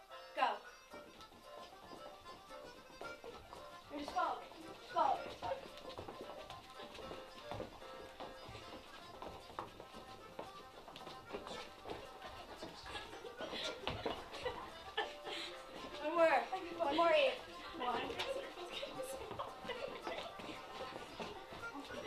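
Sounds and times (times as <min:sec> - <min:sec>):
reel music: 0:00.4 - 0:22.0
dancers' footfalls on carpet: 0:00.9 - 0:22.0.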